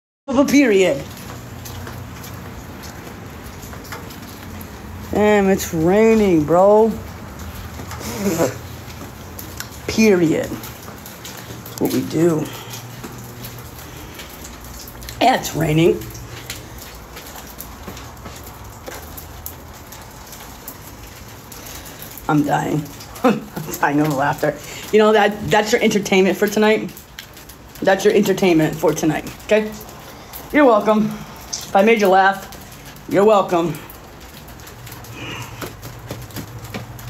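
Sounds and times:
rain falling: 0:00.3 - 0:37.0
drops ticking: 0:00.5 - 0:37.0.

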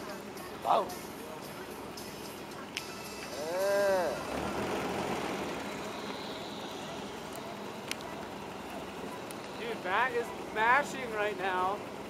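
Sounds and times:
truck driving through snow: 0:03.3 - 0:12.0
person exclaiming whoa: 0:03.4 - 0:04.2.

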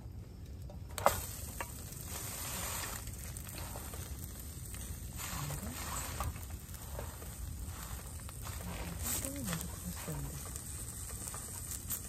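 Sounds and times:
food sizzling in a pan: 0:01.0 - 0:12.0.

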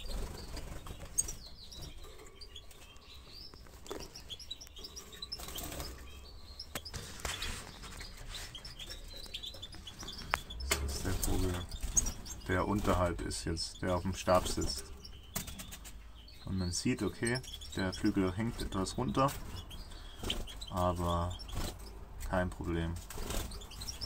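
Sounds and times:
finches chirping: 0:00.0 - 0:24.0.

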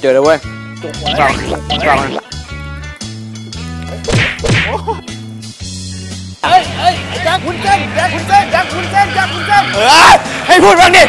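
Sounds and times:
background music with bass: 0:00.0 - 0:11.0
sharp whacks with swish: 0:04.0 - 0:04.8.

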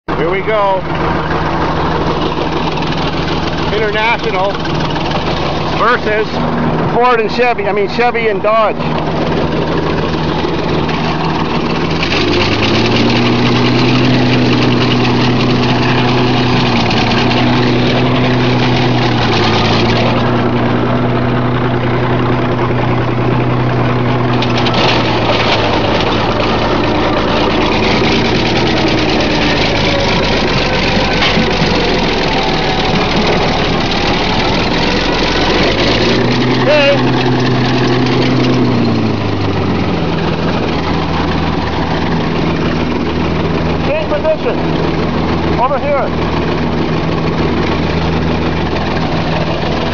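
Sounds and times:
bulldozer engine under load: 0:00.1 - 0:49.9
scrap cars being crushed: 0:23.9 - 0:39.7.

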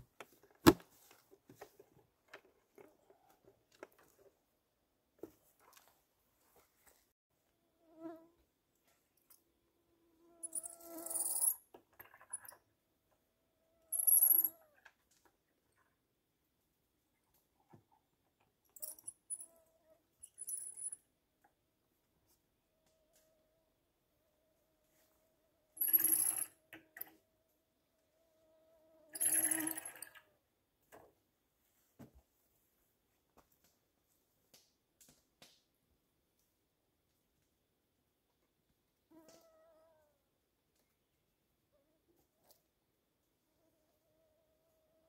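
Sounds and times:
faint steady squeak: 0:10.0 - 0:12.7, 0:13.6 - 0:14.9, 0:18.7 - 0:21.1.

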